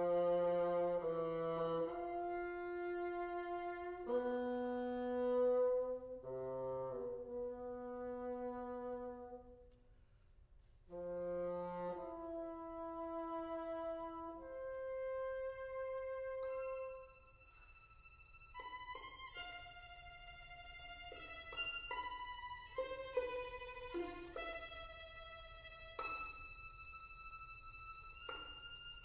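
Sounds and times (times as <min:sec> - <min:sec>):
bassoon and string quartet chords: 0:00.0 - 0:09.7, 0:10.9 - 0:17.8, 0:18.5 - 0:29.0.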